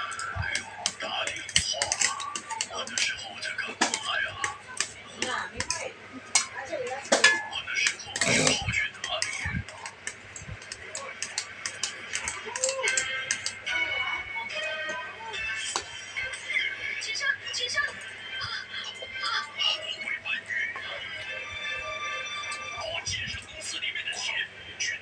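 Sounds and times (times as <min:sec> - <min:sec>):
background music: 0:00.0 - 0:25.0
background speech: 0:00.0 - 0:25.0.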